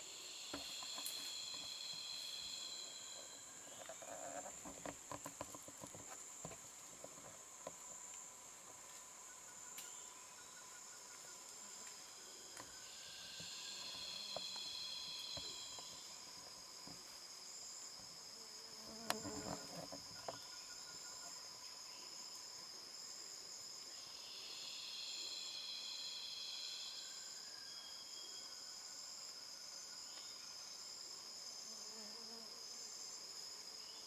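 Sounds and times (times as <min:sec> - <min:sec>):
insect chorus drone: 0:00.0 - 0:34.0
loud insect buzzing: 0:18.3 - 0:20.0.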